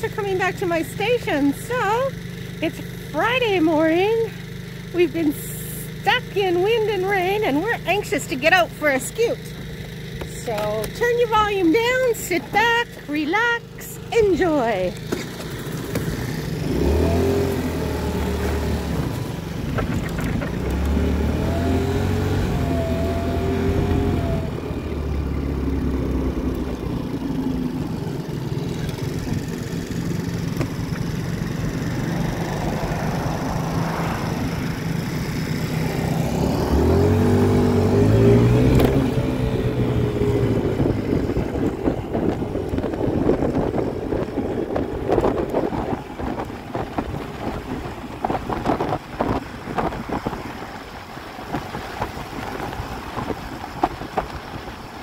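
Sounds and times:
scooter engine revving: 0.0s - 55.0s
wind buffeting microphone: 28.9s - 55.0s.

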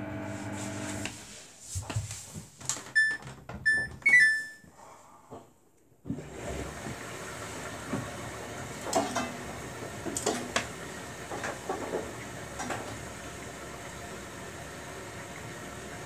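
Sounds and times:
washing machine beeps: 3.0s - 4.7s.

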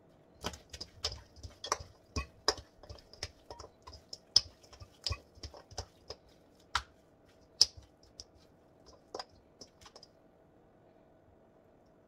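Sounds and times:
food tapping metal colander: 0.4s - 10.1s.

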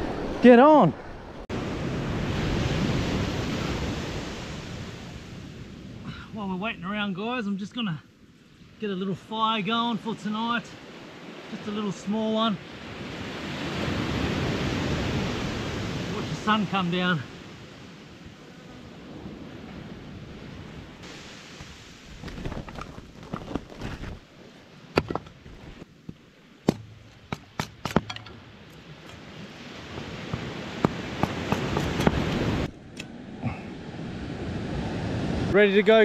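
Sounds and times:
surf: 0.0s - 25.8s
wind: 0.0s - 36.0s
firewood pieces clacking: 22.1s - 24.2s, 25.0s - 25.8s, 26.7s - 28.4s.

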